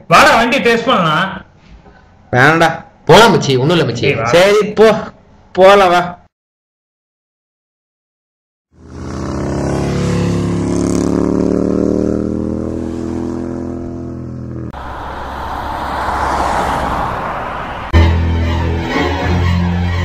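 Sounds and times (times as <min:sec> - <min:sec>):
motorcycles riding past: 0:08.8 - 0:18.0.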